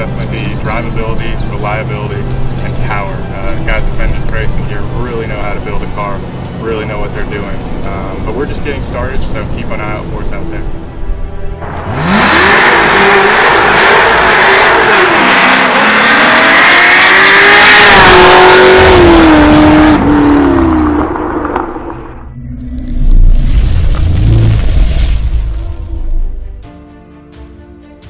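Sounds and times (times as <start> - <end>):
music: 0.0 - 11.6, 24.0 - 28.0
car engine revving: 11.6 - 25.3
deep boom: 19.9 - 26.6.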